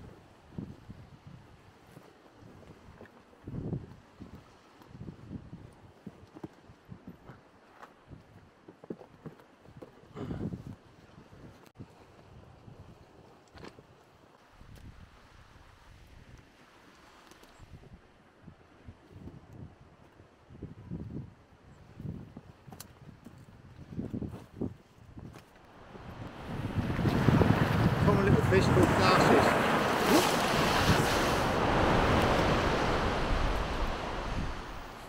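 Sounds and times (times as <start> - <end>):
wind buffeting microphone: 17.6 - 35.0.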